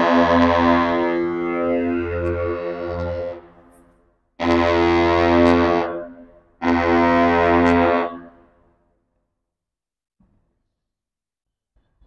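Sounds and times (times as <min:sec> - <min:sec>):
deep ship's horn blasts: 0:00.0 - 0:08.6.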